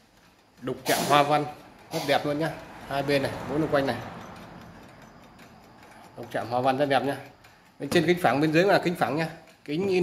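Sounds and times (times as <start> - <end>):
pendulum clock ticking: 0.0 - 10.0.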